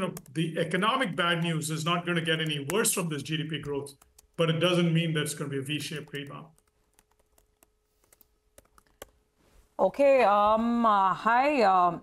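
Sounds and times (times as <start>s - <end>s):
person speaking: 0.0s - 6.6s
faint irregular clicks: 5.9s - 9.2s.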